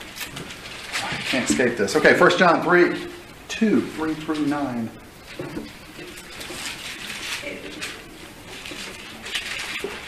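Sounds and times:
paper pages flipping: 4.0s - 10.0s.

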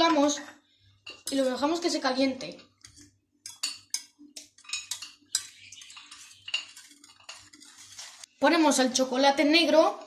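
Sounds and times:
wire whisk scraping a metal pan: 2.8s - 8.3s.

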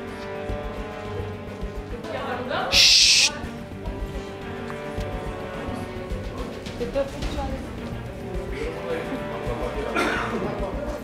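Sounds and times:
background music: 0.0s - 11.0s
loud burst of hiss: 2.7s - 3.3s.

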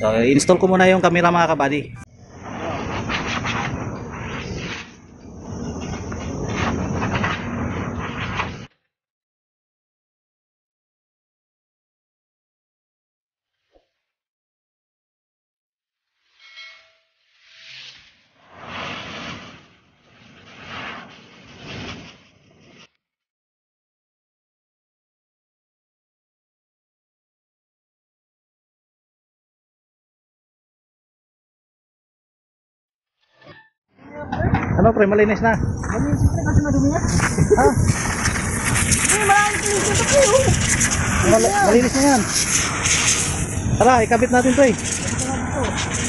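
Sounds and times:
compressed air hissing: 37.0s - 46.0s.

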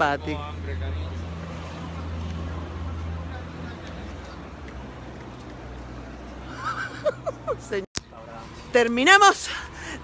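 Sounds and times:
city street traffic hum: 0.0s - 10.0s.

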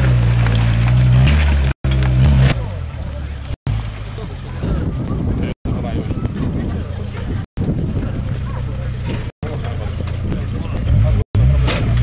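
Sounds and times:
off-road truck engine at low revs: 0.0s - 12.0s
onlookers' voices: 2.4s - 12.0s
wind on microphone: 4.4s - 9.3s.

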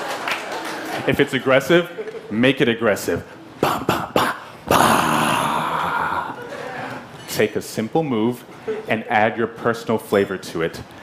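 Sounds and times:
man growling roar: 3.6s - 6.4s.

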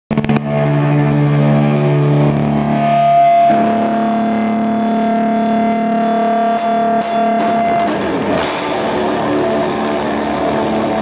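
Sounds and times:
distorted electric guitar chords: 0.1s - 11.0s.

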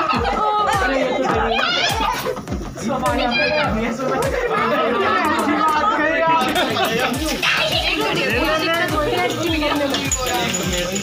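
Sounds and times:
party music with bass beat: 0.0s - 11.0s
people talking and calling out: 0.0s - 11.0s.

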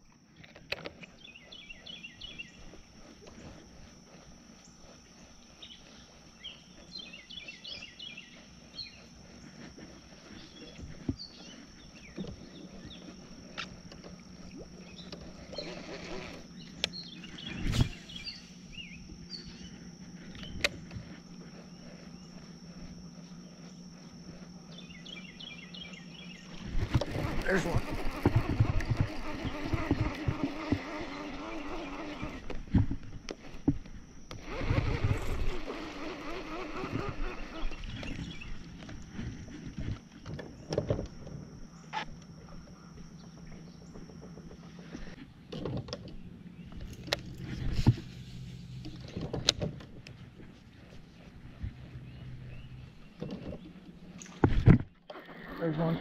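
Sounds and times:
steady low hum: 0.0s - 56.0s
thin high whine: 0.0s - 56.0s
fishing reel noise: 2.4s - 24.8s, 25.4s - 56.0s.

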